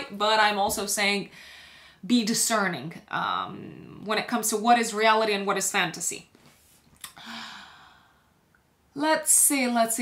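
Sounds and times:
woman sighing: 7.0 - 8.2.

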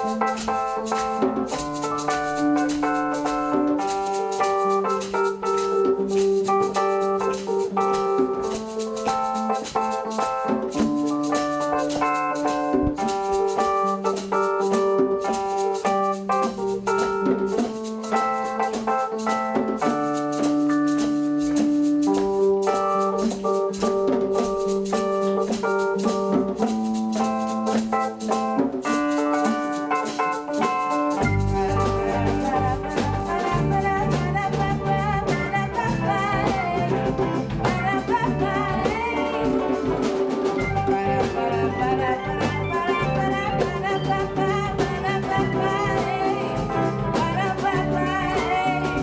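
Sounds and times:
keyboard chords: 0.0 - 49.0
bass and drums: 5.4 - 15.5, 30.6 - 49.0
person singing: 29.4 - 49.0.

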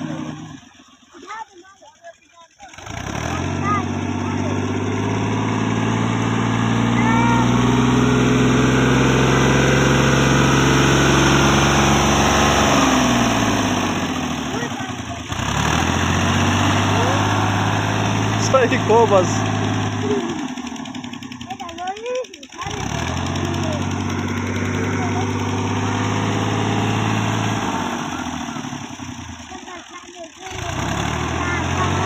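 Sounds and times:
tractor diesel engine running: 0.0 - 32.0
wheels churning through mud: 0.0 - 32.0.

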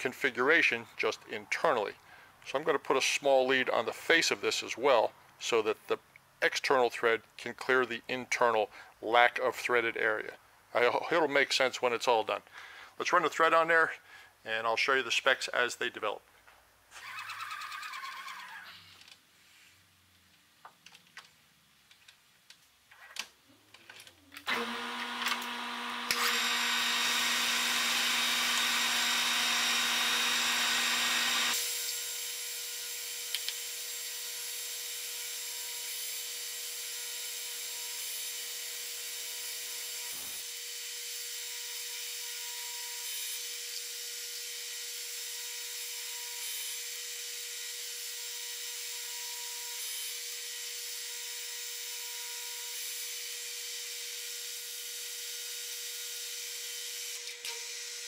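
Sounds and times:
metal lathe whine: 24.5 - 31.7.

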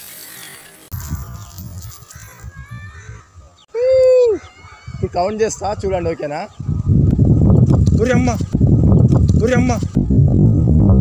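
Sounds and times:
wind buffeting microphone: 0.9 - 11.0.

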